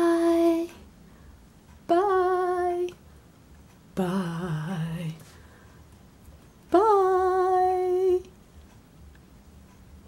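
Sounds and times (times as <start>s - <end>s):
person humming: 1.9s - 3.0s, 4.0s - 5.3s, 6.7s - 8.3s.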